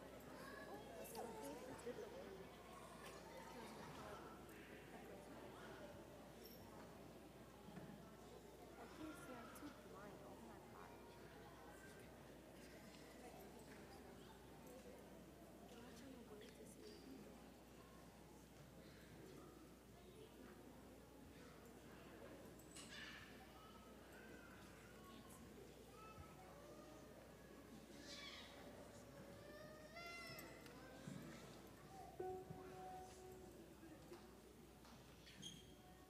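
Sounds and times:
faint murmur of voices: 0:00.0 - 0:36.0
faint high-pitched cry: 0:22.7 - 0:32.2.

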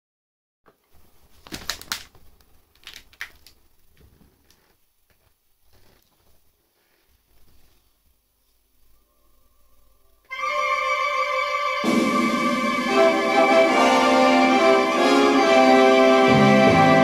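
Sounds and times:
faint cassette tape hiss: 0:00.7 - 0:10.4
sharp clicks and rustles: 0:00.8 - 0:06.4.

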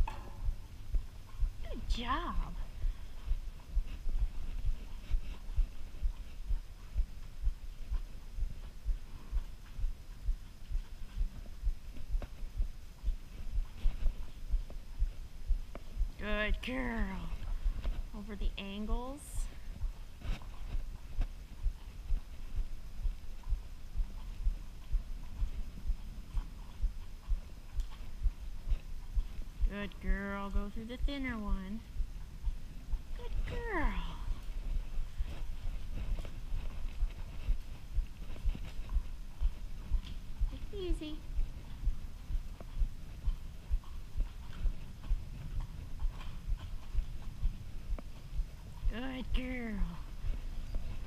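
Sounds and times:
horse hoofbeats on sand: 0:00.0 - 0:51.0.

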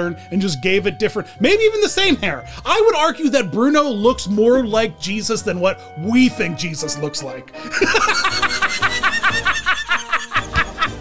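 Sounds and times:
background music: 0:00.0 - 0:11.0
man laughing hard: 0:07.6 - 0:11.0.

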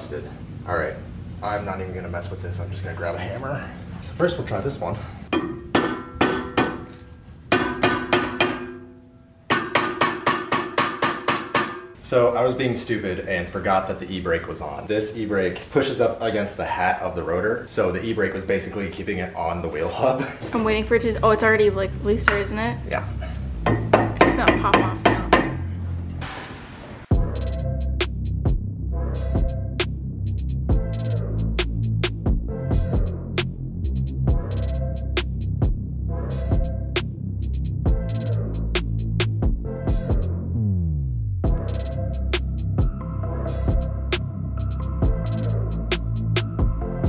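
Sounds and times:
hammer striking ringing metal rotor: 0:05.3 - 0:06.9
hammer striking metal rotor: 0:05.3 - 0:12.0, 0:23.6 - 0:25.6.

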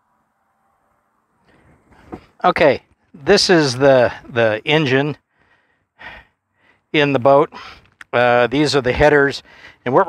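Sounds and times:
faint background hiss: 0:00.0 - 0:10.0
faint low noise: 0:00.0 - 0:10.0.

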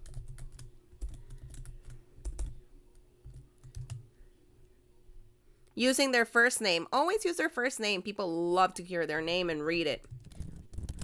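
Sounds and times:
keyboard typing: 0:00.0 - 0:02.6, 0:03.2 - 0:04.0, 0:10.0 - 0:11.0.

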